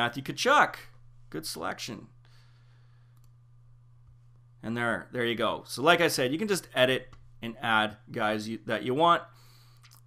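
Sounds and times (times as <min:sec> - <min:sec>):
steady low hum: 0:00.0 - 0:10.0
computer mouse click: 0:03.1 - 0:03.4.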